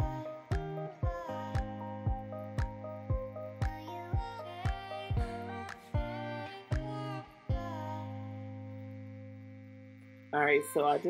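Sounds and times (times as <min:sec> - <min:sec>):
held music chord: 0:00.0 - 0:11.0.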